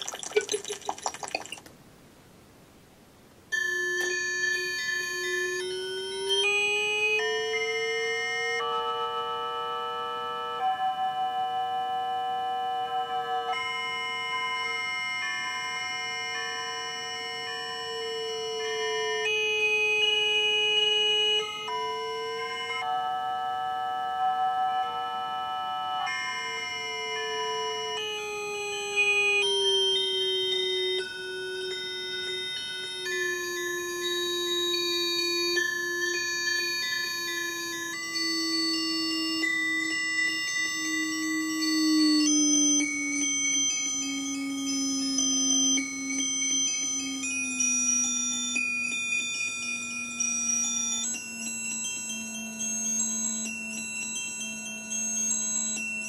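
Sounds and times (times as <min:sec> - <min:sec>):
low tone sliding downward: 0:28.5 - 0:56.0.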